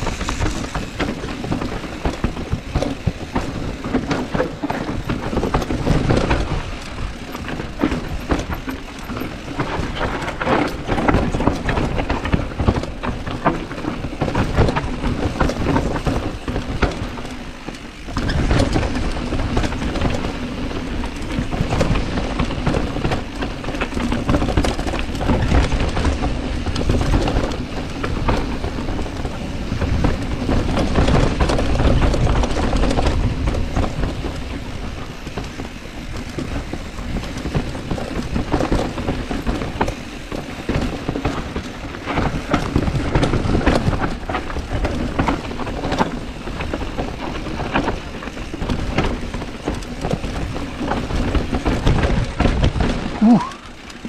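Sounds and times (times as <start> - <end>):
bike rattling: 0.0 - 54.0
bike tyres rumbling over gravel: 0.0 - 54.0
wind buffeting microphone: 0.0 - 54.0.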